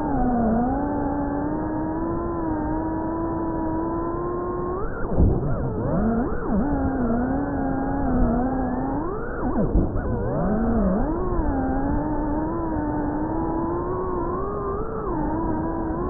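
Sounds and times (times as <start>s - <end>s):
drone motors and propellers whining: 0.0s - 16.0s.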